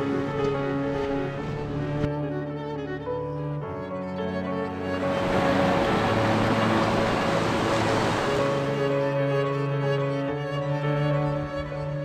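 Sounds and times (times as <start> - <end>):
strings and piano music: 0.0 - 12.0
rushing river water: 4.7 - 10.0.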